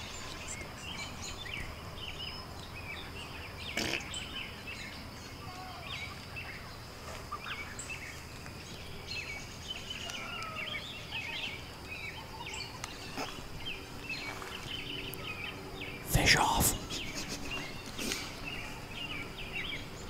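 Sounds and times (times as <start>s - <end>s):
bird chirps and calls: 9.1s - 20.0s.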